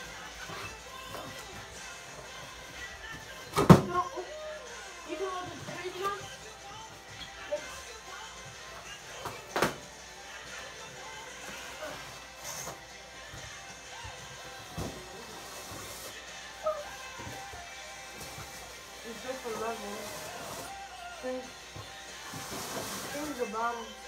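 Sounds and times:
faint background music: 0.0 - 24.0.

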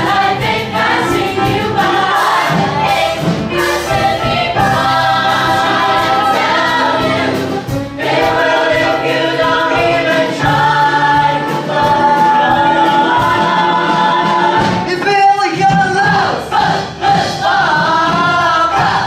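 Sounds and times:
accompanying music: 0.0 - 19.0
cast singing together: 0.0 - 19.0.

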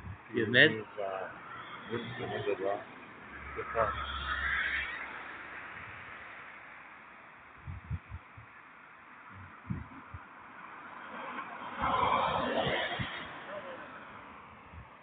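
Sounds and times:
dull low thumps: 0.0 - 0.3, 7.6 - 8.6, 9.3 - 10.3
car road and wind noise: 0.0 - 15.0.

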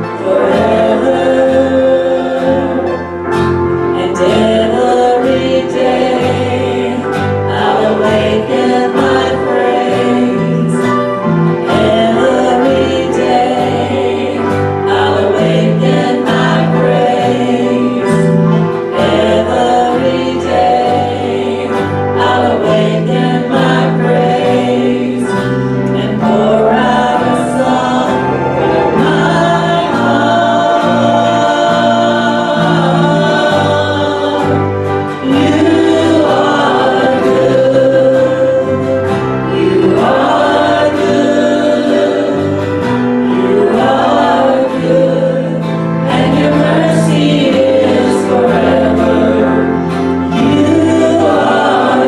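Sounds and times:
bass line: 0.0 - 52.0
guitars: 0.0 - 52.0
people singing gospel song: 0.0 - 52.0.

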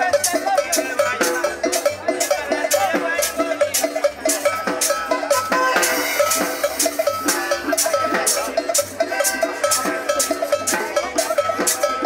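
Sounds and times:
cowbell strikes: 0.0 - 12.0
live band playing dance beat: 0.0 - 12.0.

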